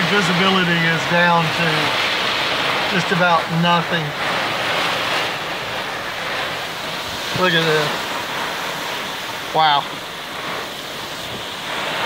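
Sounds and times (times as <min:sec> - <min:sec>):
rain beating on a vehicle: 0:00.0 - 0:12.0.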